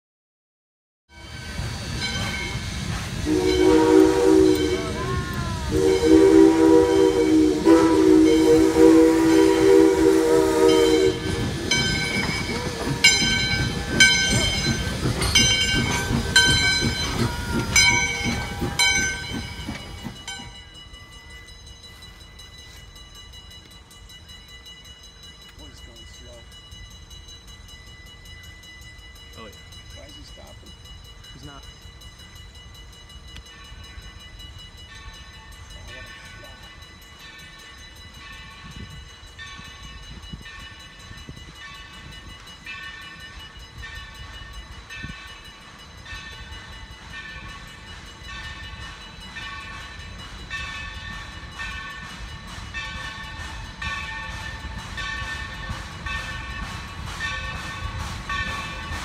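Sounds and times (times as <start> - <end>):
locomotive bell ringing: 1.1 - 59.0
train noise: 1.1 - 59.0
steam locomotive whistle: 1.2 - 19.9.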